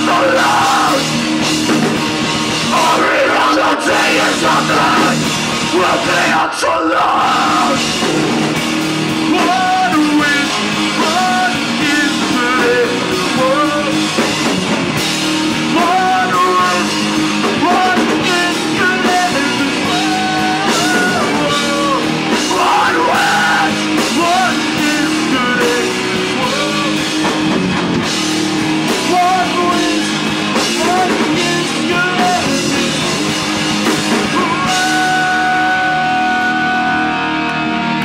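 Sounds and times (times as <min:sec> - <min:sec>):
person singing: 0:00.0 - 0:01.2, 0:02.6 - 0:08.0, 0:09.3 - 0:14.2, 0:15.7 - 0:27.3, 0:29.0 - 0:37.8
punk rock band playing: 0:00.0 - 0:38.0.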